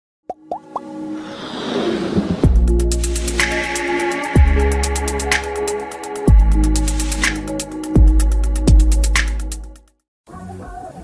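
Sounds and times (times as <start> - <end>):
whoosh: 1.1 - 4.1.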